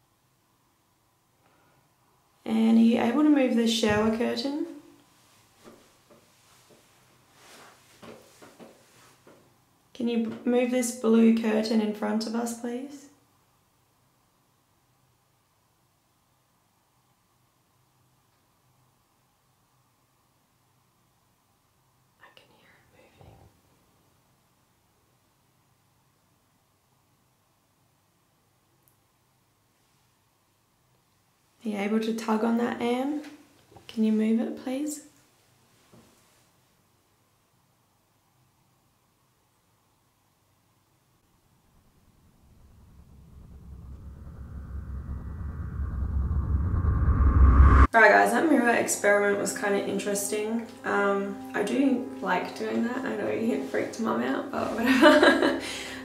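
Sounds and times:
woman whispering: 22.2s - 23.4s
low rumbling horror riser: 41.6s - 48.1s.

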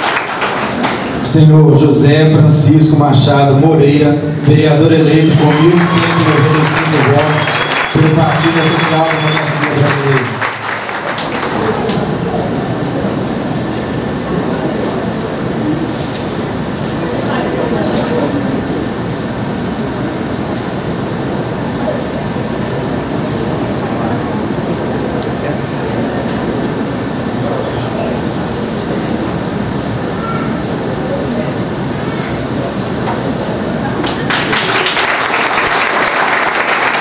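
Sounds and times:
audience applauding: 0.0s - 1.2s, 4.9s - 12.9s, 34.0s - 37.0s
voices: 1.2s - 34.3s.

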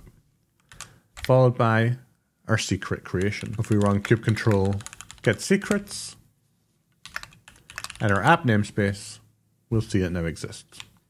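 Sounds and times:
keyboard typing: 0.6s - 1.4s, 3.1s - 5.9s, 6.9s - 9.0s.

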